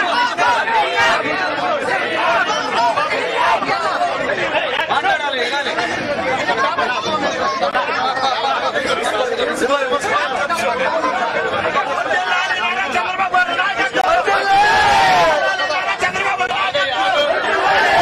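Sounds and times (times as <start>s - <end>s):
crowd chatter: 0.0s - 18.0s.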